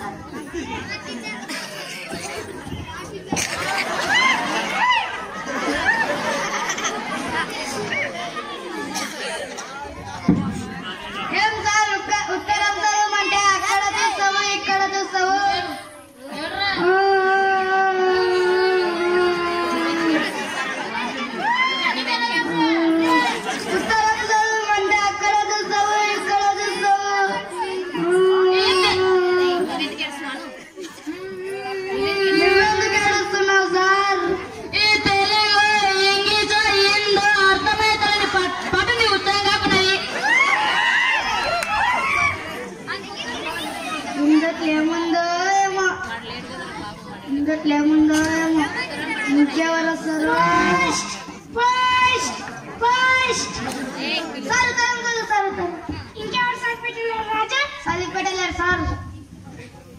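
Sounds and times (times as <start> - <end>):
child speaking over loudspeakers: 0.0 - 4.0, 7.2 - 40.2, 42.8 - 59.4
overlapping chatter: 0.0 - 59.9.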